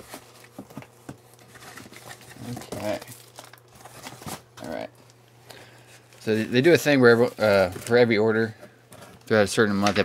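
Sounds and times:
plastic packing crinkling: 0.0 - 5.2.

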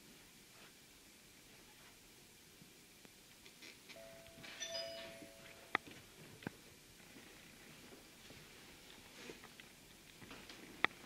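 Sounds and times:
electronic chime: 4.0 - 5.8.

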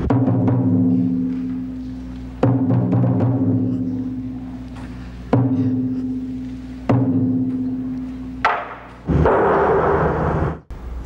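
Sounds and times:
deep drum strokes ringing: 0.0 - 4.4, 5.3 - 10.6.

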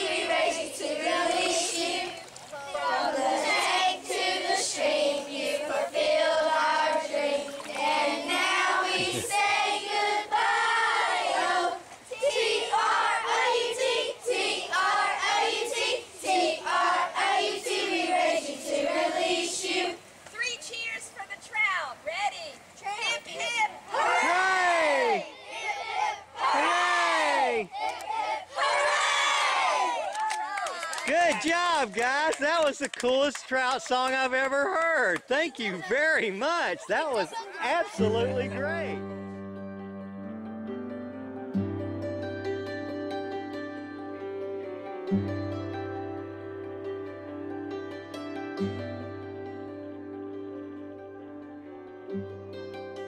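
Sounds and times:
children singing together: 0.0 - 20.1
children calling out together: 2.0 - 3.7, 8.7 - 9.5, 21.4 - 31.0, 37.1 - 38.2.

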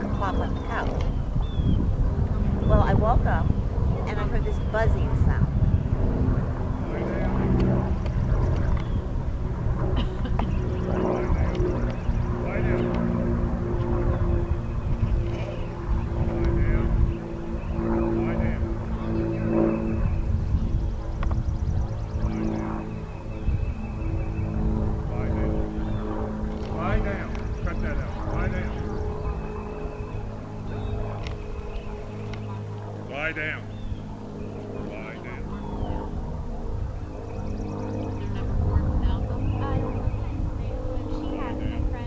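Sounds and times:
indistinct talk: 0.0 - 1.1, 2.4 - 5.6, 6.7 - 8.9, 9.9 - 20.1, 25.0 - 42.0
steady low hum: 0.0 - 42.0.

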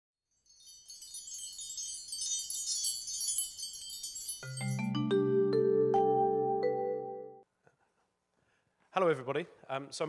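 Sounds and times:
tinkling wind chimes: 0.3 - 5.6.

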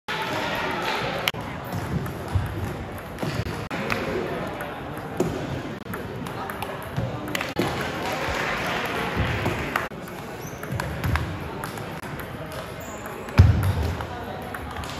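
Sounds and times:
voices chattering in a gym: 0.1 - 14.9.

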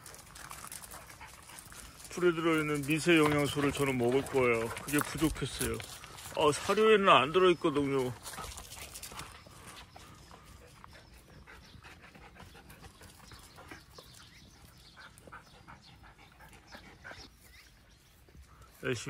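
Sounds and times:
dogs chewing grass: 0.0 - 17.5.

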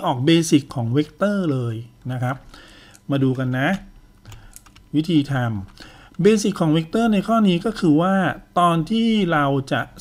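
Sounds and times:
person speaking: 0.0 - 10.0
keyboard clicks: 4.2 - 4.9.

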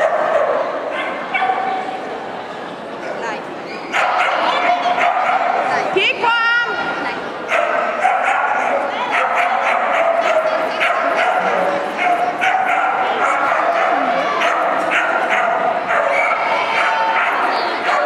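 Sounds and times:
dogs barking and yipping: 0.0 - 1.9, 3.9 - 5.7, 7.5 - 18.0
murmuring voices: 0.0 - 18.0.

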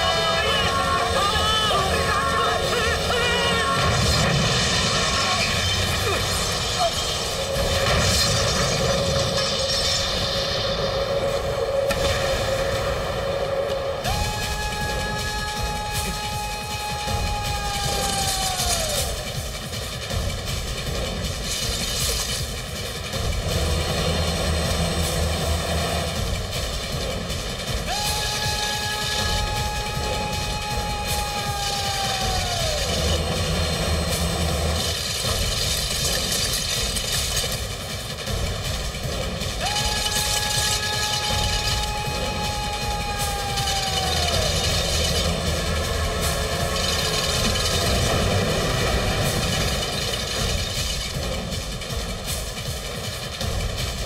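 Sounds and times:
train rushing rumble: 0.0 - 54.0.

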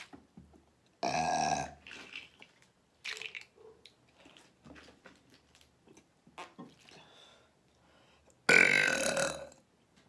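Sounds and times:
woman burping: 1.0 - 1.8, 8.5 - 9.6.

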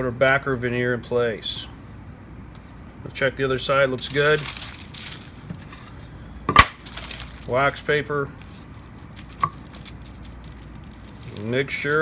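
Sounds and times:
faint handling sounds: 1.7 - 6.2, 6.8 - 12.0.

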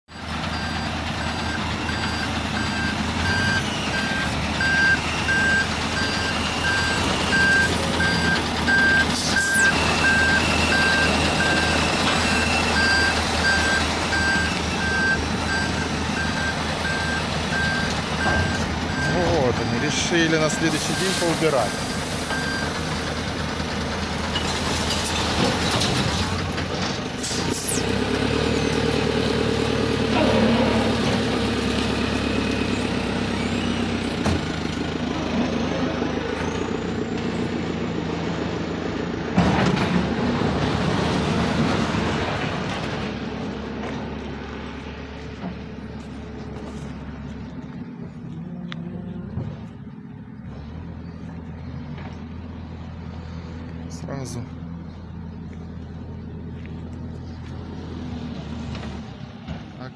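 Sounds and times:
heavy diesel machinery running: 0.1 - 59.9.

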